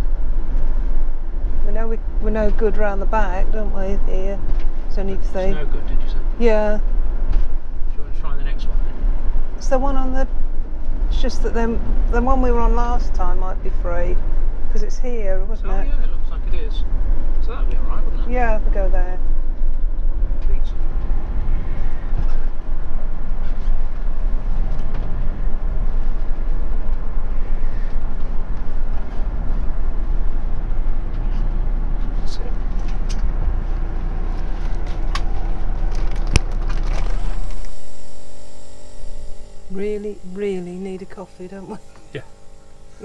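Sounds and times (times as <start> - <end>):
engine and road rumble: 0.0 - 43.0.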